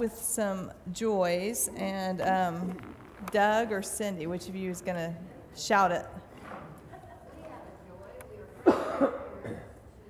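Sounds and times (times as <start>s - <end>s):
loud coughs: 8.6s - 9.8s.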